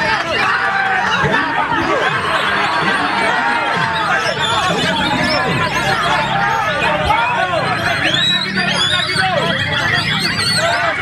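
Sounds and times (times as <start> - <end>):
bird singing whistled runs: 3.8 - 6.6, 7.2 - 11.0.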